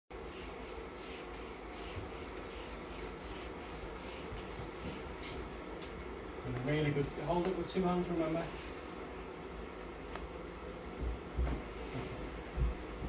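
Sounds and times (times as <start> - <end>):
paintbrush scrubbing on paper: 0.1 - 5.5.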